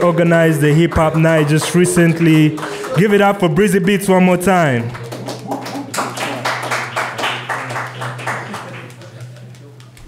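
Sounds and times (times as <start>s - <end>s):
audience applauding: 0.1s - 10.0s.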